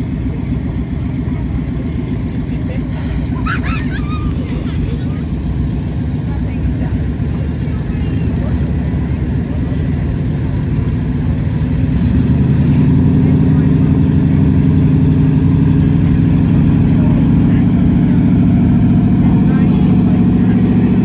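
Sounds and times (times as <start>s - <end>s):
truck engine running: 0.0s - 21.0s.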